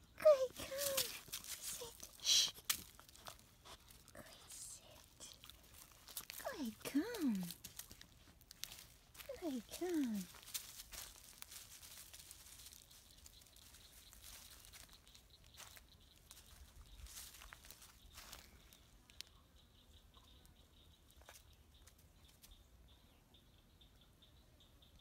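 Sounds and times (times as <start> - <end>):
footsteps crunching dry leaves: 0.6 - 4.1, 4.8 - 18.8.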